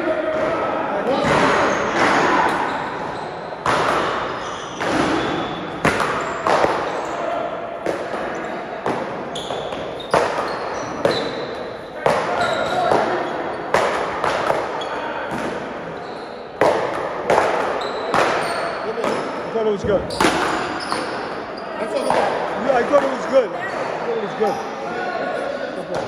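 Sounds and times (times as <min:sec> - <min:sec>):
sneakers squeaking on court: 0:01.7 - 0:07.2, 0:08.3 - 0:13.8, 0:15.9 - 0:16.6, 0:17.7 - 0:24.8
echoing ball cracks off paddles: 0:03.6 - 0:06.9.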